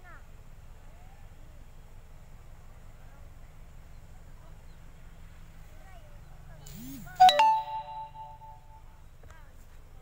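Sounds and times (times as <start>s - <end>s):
bell-like ding: 7.2s - 8.8s.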